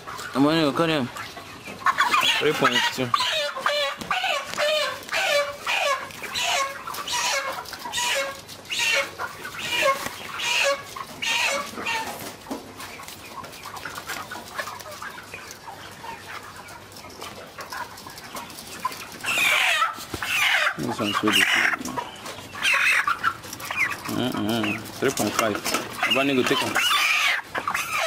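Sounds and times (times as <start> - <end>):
chickens clucking: 0.0 - 28.0.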